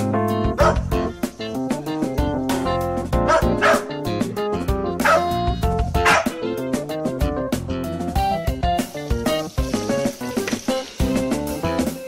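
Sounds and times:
background music: 0.0s - 12.0s
small dogs yipping and barking: 3.3s - 3.9s, 5.0s - 5.4s, 6.0s - 6.4s.

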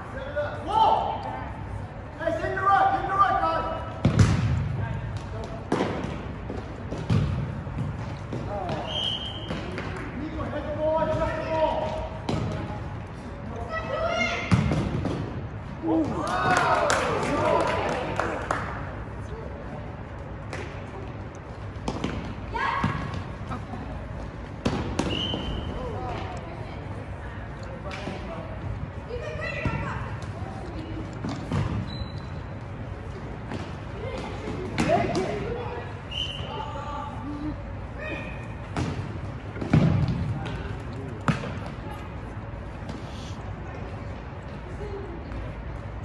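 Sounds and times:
sneaker squeaks: 8.6s - 9.9s, 24.8s - 26.0s, 31.3s - 32.8s, 36.0s - 36.8s, 38.0s - 38.7s.

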